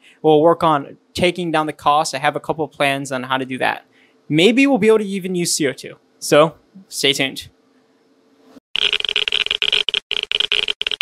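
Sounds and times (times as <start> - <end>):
stuttering electronic static buzz: 8.8 - 11.0.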